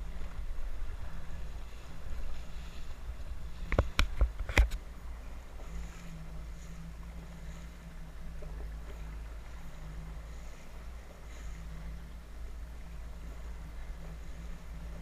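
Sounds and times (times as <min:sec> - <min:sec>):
jet ski engine rumble: 0:00.0 - 0:15.0
wind and water noise: 0:00.0 - 0:15.0.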